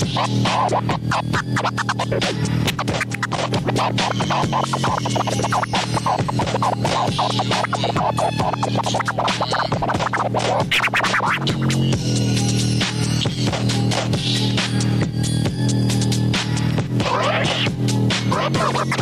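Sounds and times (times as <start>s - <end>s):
hip-hop beat: 0.0s - 19.0s
vinyl scratching: 0.0s - 19.0s.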